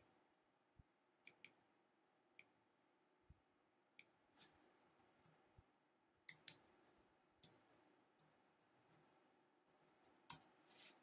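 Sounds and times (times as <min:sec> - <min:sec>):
mouse and keyboard clicks: 0:06.3 - 0:06.8, 0:07.4 - 0:10.5.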